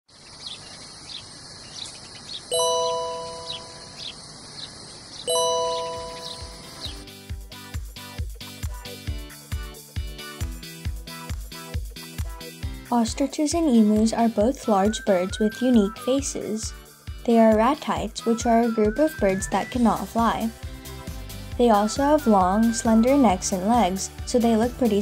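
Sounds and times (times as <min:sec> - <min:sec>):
birds chirping: 0:00.1 - 0:07.2
held chords: 0:02.5 - 0:04.0, 0:05.3 - 0:07.2
ringing chime strikes: 0:02.5 - 0:04.0, 0:05.3 - 0:06.8.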